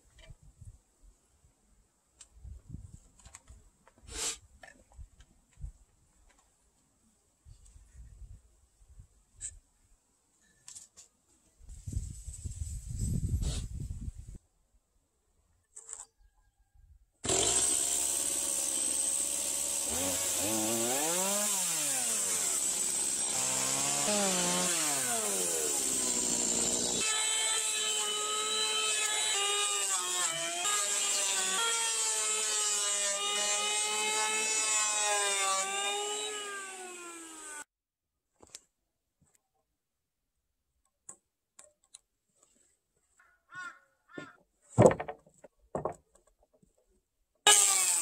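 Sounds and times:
electric hand planer shaving wood: 0:17.3 - 0:37.7, 0:47.5 - 0:48.0.

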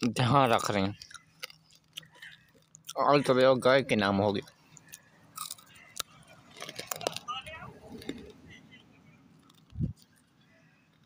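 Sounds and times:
person chewing crisp food: 0:00.1 - 0:03.4, 0:04.4 - 0:07.3, 0:09.4 - 0:11.0.

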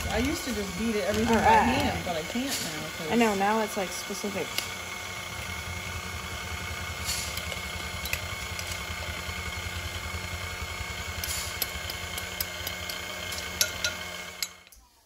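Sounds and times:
electric stand mixer running: 0:00.0 - 0:14.7.

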